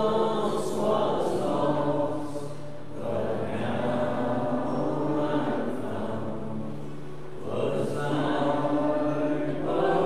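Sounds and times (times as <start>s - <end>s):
voices singing a hymn: 0.0s - 10.0s.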